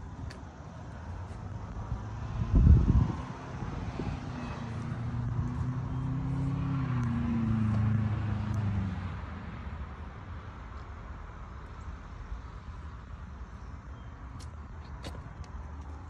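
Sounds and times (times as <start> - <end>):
vehicle engine passing: 1.7 - 9.2.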